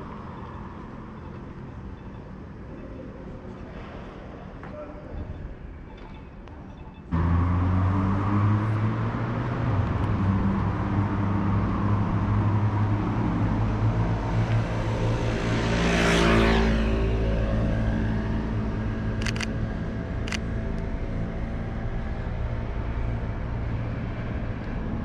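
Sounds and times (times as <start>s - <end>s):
vehicle passing: 7.1s - 25.0s
vehicle engine running: 18.2s - 24.7s.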